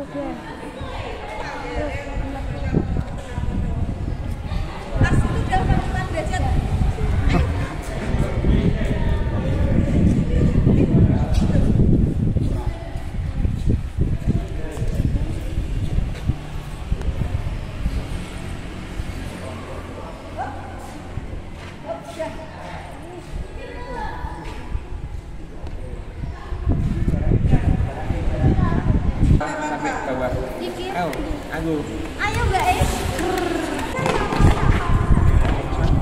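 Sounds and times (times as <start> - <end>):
people talking indistinctly: 19.4 - 36.0.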